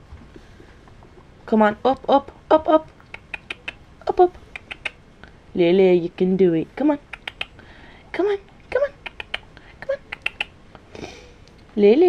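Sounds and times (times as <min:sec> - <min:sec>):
guinea pig squeaking: 0:03.0 - 0:05.0.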